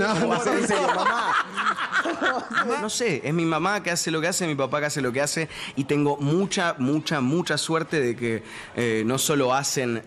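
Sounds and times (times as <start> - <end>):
people chuckling: 0.0 - 3.0.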